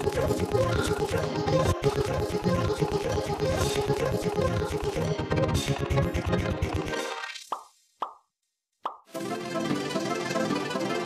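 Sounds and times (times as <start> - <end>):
pop sound effects: 7.4 - 9.2
light instrumental music: 9.1 - 11.0.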